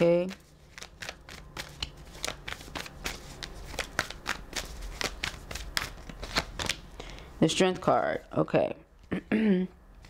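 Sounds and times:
cards being shuffled by hand: 0.0 - 6.9.

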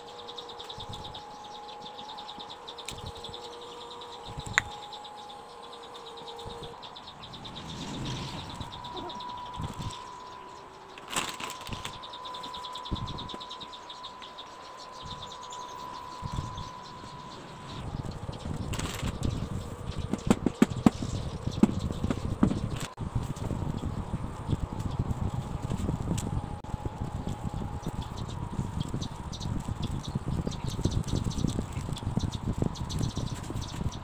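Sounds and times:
insect chirping: 0.0 - 20.2.

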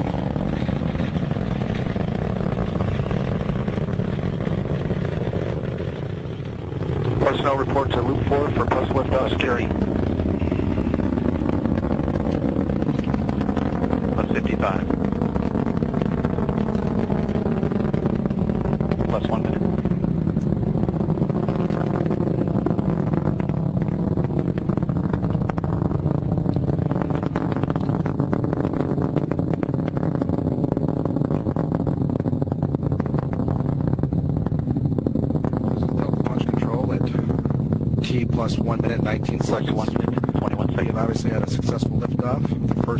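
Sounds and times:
rocket engines rumbling: 0.0 - 42.9.

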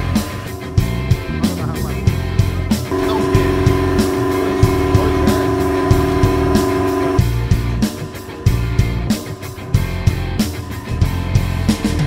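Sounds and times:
steady drum beat: 0.0 - 12.0
sustained chord: 0.0 - 12.0.

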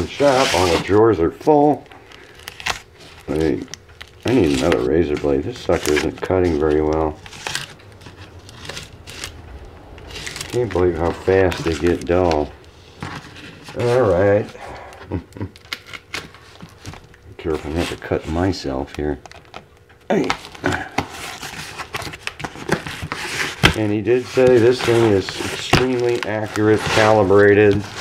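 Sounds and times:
paper wrapping crinkling and tearing: 0.0 - 28.0
low hum: 7.2 - 13.3.

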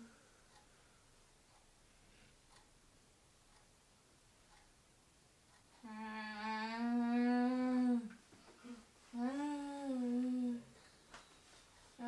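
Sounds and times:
person humming long notes: 5.8 - 8.2, 9.2 - 10.7.

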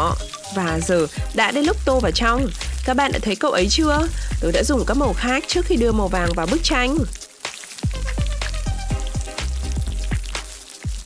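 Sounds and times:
batter sizzling on griddle: 0.0 - 11.0
plucked background music: 0.0 - 11.0.

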